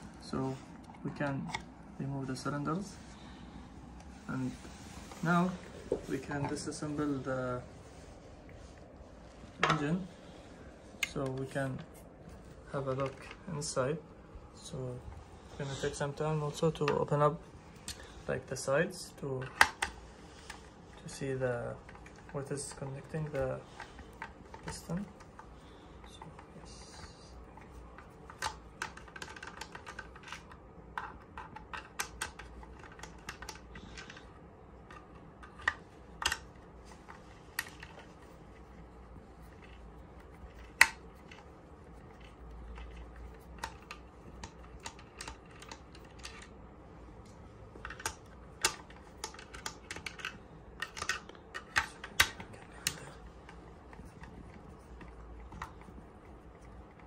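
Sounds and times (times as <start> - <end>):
plastic parts being handled: 0.0 - 57.0.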